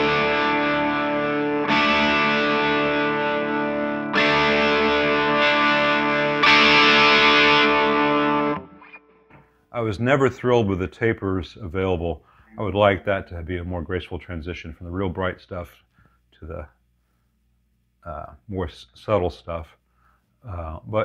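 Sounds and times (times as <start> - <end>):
distorted electric guitar chords: 0.0 - 9.6.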